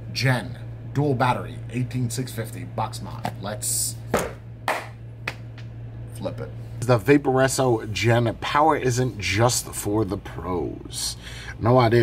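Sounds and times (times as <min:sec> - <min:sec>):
low electrical hum: 0:00.0 - 0:12.0
sharp hand claps: 0:04.1 - 0:05.8.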